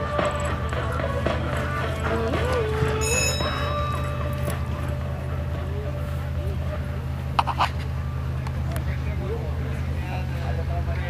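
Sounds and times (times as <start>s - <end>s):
horse hoofbeats on grass: 0.0s - 6.6s
background music with held notes: 0.0s - 9.0s.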